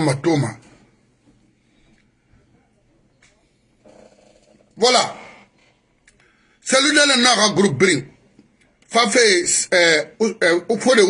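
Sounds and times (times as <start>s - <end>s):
man speaking: 0.0s - 0.7s, 4.8s - 5.5s, 6.6s - 8.2s, 8.9s - 11.0s.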